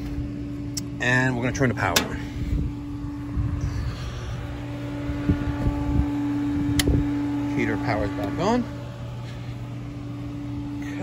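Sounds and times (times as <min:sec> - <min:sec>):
pool equipment humming: 0:00.0 - 0:11.0.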